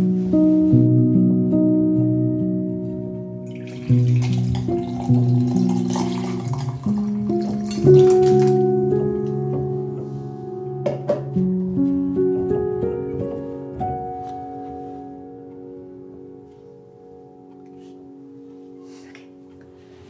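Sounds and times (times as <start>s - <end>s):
gentle instrumental music: 0.0s - 20.0s
drink pouring into a glass: 3.5s - 8.6s.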